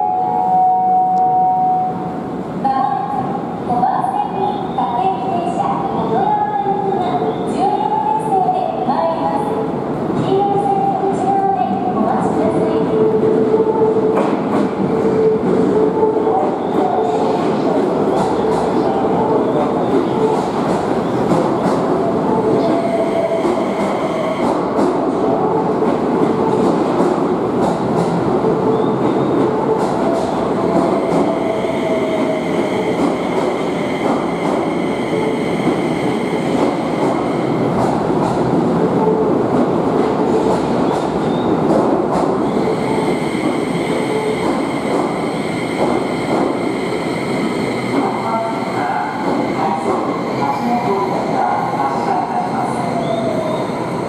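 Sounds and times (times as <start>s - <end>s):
electric train rumbling: 0.0s - 54.0s.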